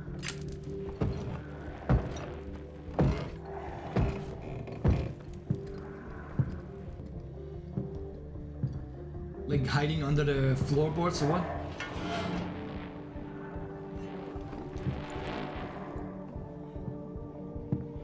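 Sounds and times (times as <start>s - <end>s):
low suspense music: 0.0s - 18.0s.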